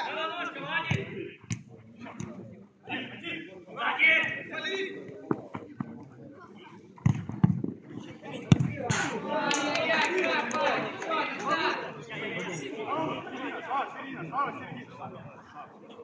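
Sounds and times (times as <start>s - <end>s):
football kicked on turf: 8.5s - 8.8s.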